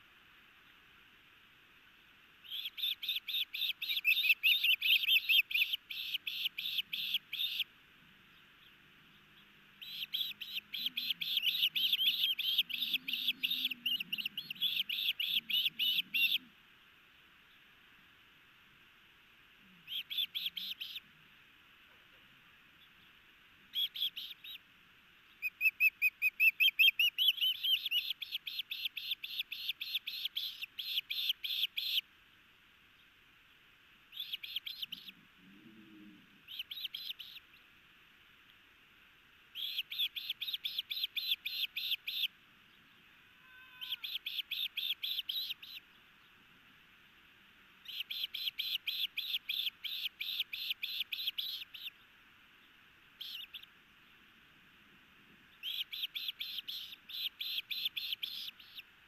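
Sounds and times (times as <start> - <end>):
young osprey piercing chirps: 2.4 - 7.7, 9.8 - 16.5, 19.8 - 21.0, 23.7 - 24.6, 25.3 - 32.0, 34.1 - 35.2, 36.5 - 37.6, 39.5 - 42.3, 43.5 - 45.8, 47.8 - 52.0, 53.2 - 53.7, 55.6 - 58.9.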